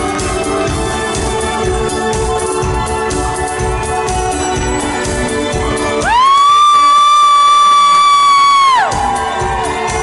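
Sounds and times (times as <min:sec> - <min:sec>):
shrill audience whoop: 0:06.0 - 0:10.0.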